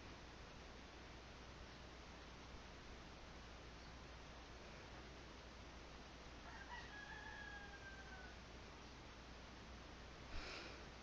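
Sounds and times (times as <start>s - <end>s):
faint drawn-out animal call: 6.4s - 8.4s.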